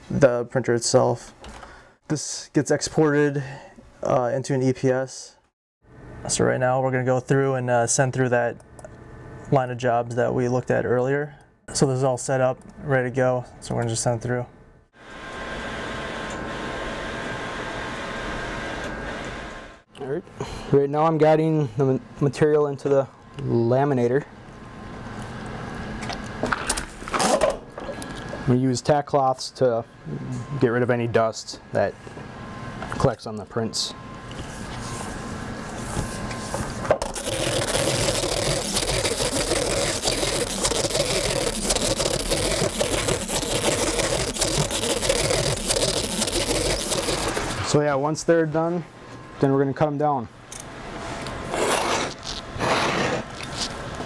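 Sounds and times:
inkjet printer whirring: 37.2s - 47.6s.

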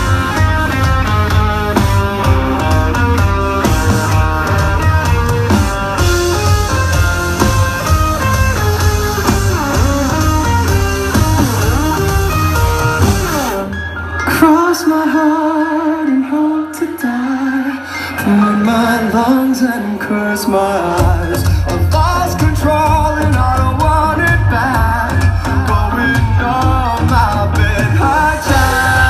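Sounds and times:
electric guitar riff: 0.0s - 14.3s, 28.4s - 29.0s
rock band playing live: 0.0s - 29.0s.

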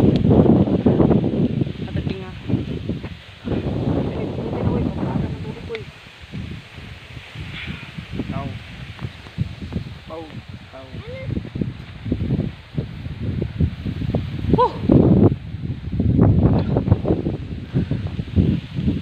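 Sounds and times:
tall grass rustling: 0.0s - 19.0s
wind rumbling on microphone: 0.0s - 19.0s.

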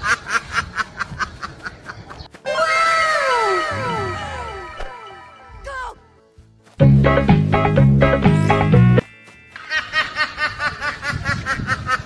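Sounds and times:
cartoon meow-like cry echoing: 2.5s - 4.8s.

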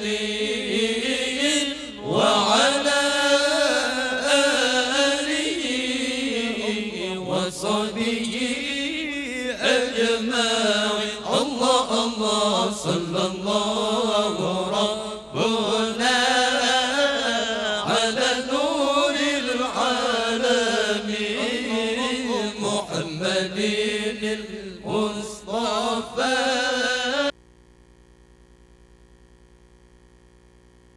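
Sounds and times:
man chanting into a microphone: 0.0s - 27.3s.

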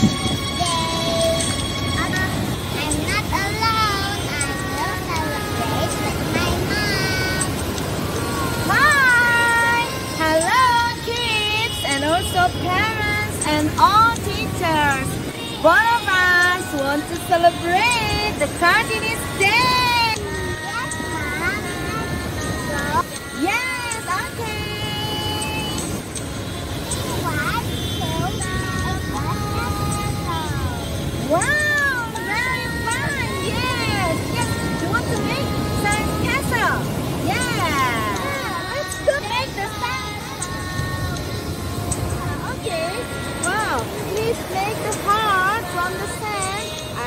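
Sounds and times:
background music: 0.0s - 47.0s
surf washing: 0.0s - 47.0s
high-pitched voices exclaiming: 8.4s - 10.8s, 27.1s - 41.2s.

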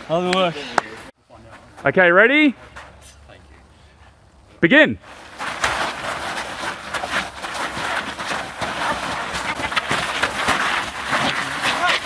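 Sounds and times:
feet scuffling on dirt: 5.0s - 12.0s
bodies knocking and scraping: 5.1s - 12.0s.

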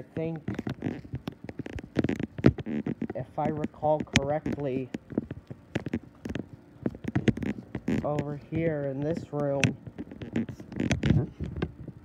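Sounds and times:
footsteps: 0.4s - 12.0s.

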